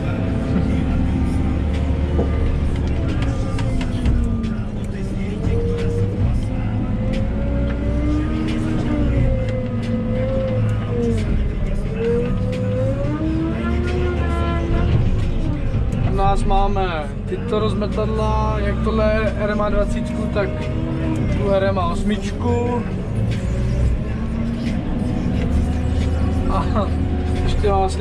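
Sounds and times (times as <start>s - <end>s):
diesel engine revving: 0.0s - 28.0s.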